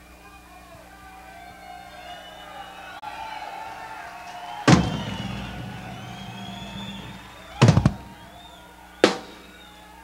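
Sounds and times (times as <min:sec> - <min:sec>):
drum kit hits: 0:04.7 - 0:08.4.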